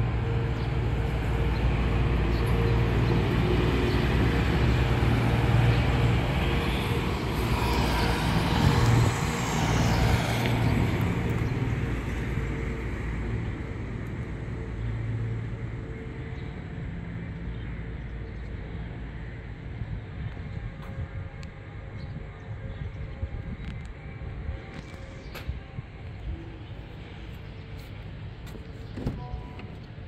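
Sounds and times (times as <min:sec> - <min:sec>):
road traffic hum: 0:00.0 - 0:30.0.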